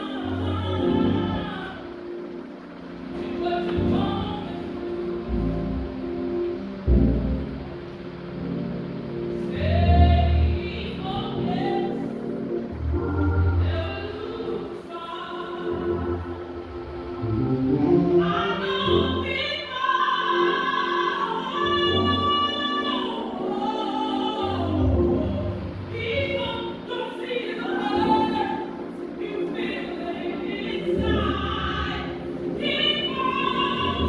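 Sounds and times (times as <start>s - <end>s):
choir singing long notes: 0.0s - 34.0s.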